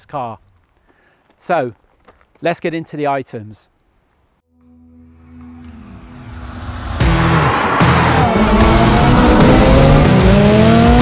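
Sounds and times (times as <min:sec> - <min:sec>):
car engine droning: 0:05.0 - 0:11.0.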